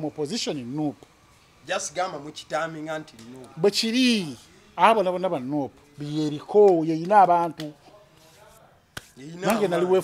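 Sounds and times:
man speaking: 9.2s - 10.0s.

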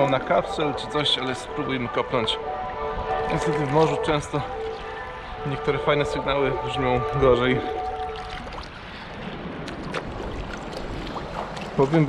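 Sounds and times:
sea water sloshing and splashing: 0.0s - 12.0s.

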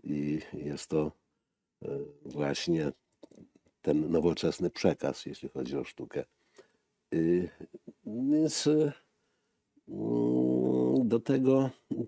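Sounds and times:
man speaking: 0.0s - 1.2s, 1.8s - 3.0s, 3.8s - 6.3s, 7.1s - 9.1s, 9.8s - 12.0s.

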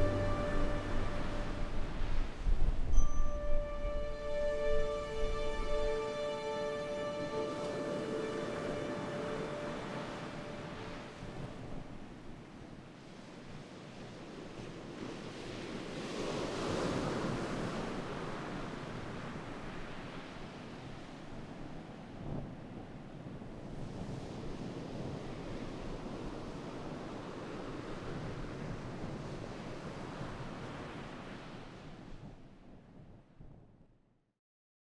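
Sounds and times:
sea waves washing on shore: 0.0s - 32.3s
wind: 0.0s - 34.2s.

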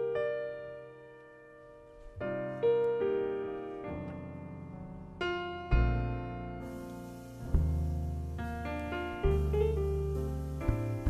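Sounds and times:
grand piano jazz chords: 0.0s - 11.0s.

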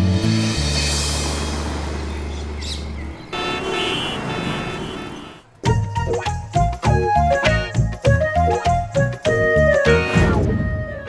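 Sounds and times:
road traffic: 0.0s - 6.6s
car horns honking: 3.3s - 5.6s.

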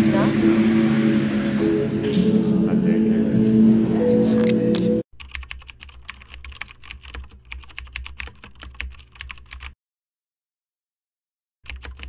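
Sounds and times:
steady droning tones: 0.0s - 5.0s.

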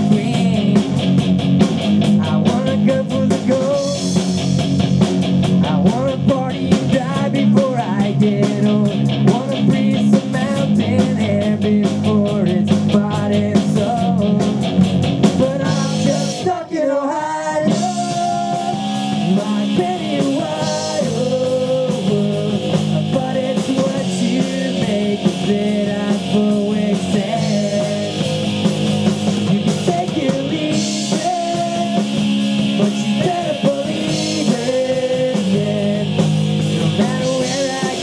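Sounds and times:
person singing: 0.0s - 1.0s, 2.2s - 4.2s, 5.6s - 14.6s, 15.4s - 28.3s, 29.5s - 38.0s
drum kit with cymbal strokes: 0.0s - 16.5s, 17.6s - 38.0s
electric guitar through an amp: 0.0s - 38.0s.

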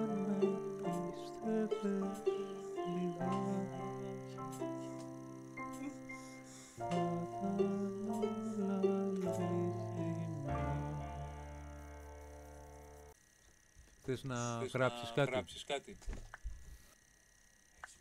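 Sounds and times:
electronic keyboard chords: 0.0s - 13.2s
slow electronic melody: 0.0s - 13.2s.

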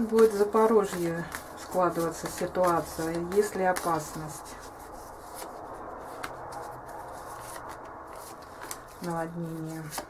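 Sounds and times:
cards rustling: 0.0s - 10.0s.

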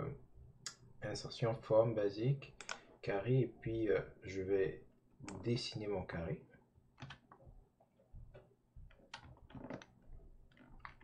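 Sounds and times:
computer mouse clicks: 2.6s - 2.8s.

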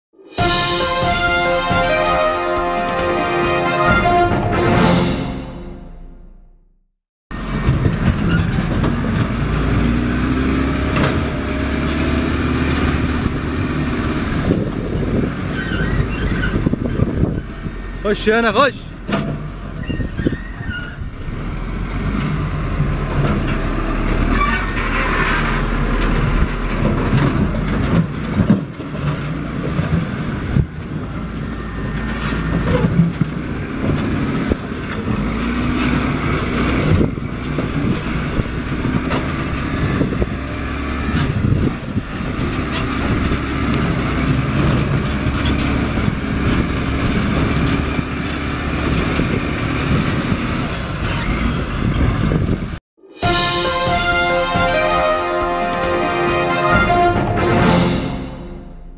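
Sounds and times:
diesel engine under load: 7.3s - 58.9s.

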